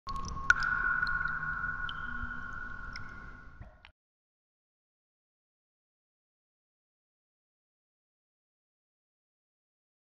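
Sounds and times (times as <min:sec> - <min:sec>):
steady ringing tone: 0:00.5 - 0:03.6.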